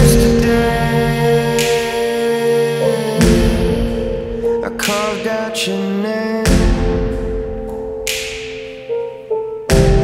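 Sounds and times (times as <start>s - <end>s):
held chord over low bass: 0.0s - 8.0s.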